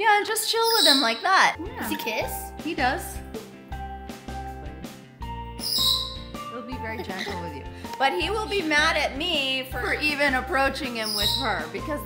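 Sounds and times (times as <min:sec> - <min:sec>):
background music: 0:00.0 - 0:12.0
parrot chirp: 0:00.6 - 0:01.6, 0:05.5 - 0:07.5, 0:10.8 - 0:12.0.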